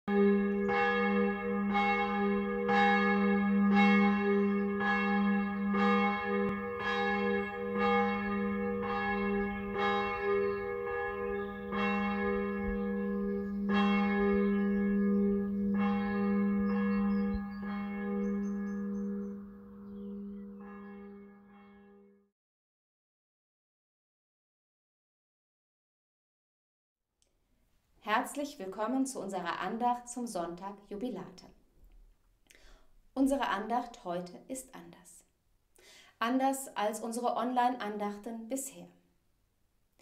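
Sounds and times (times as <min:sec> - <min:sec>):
church bell tolling: 0:00.1 - 0:22.2.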